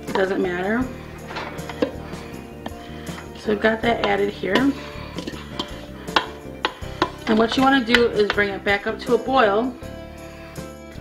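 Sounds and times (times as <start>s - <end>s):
soft background music: 0.0s - 11.0s
wooden spoon scraping a bowl: 0.1s - 8.8s.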